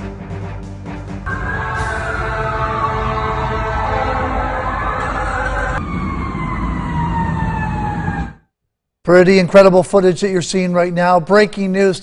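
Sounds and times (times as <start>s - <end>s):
emergency siren wailing: 1.3s - 8.5s.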